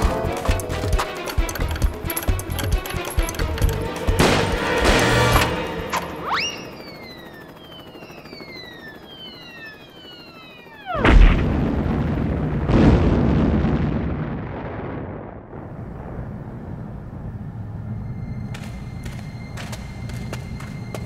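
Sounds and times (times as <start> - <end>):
loud explosion: 11.0 - 16.9
long rumble: 11.0 - 21.0.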